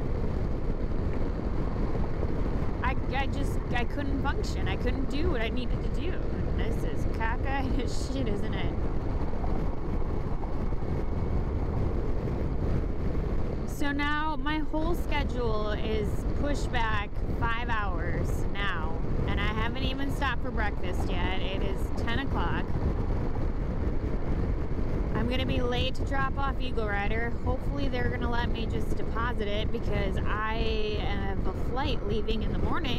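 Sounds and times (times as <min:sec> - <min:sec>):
motorcycle road noise: 0:00.0 - 0:32.9
wind buffeting microphone: 0:00.0 - 0:32.9.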